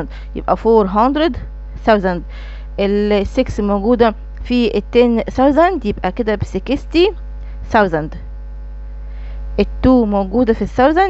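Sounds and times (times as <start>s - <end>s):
woman speaking: 0.0s - 8.3s, 9.6s - 11.0s
electrical mains hum: 0.0s - 11.0s.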